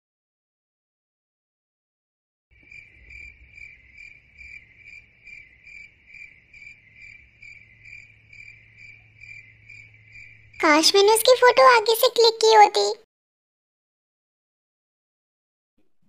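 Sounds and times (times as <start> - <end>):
cricket chirping: 2.6 - 11.3.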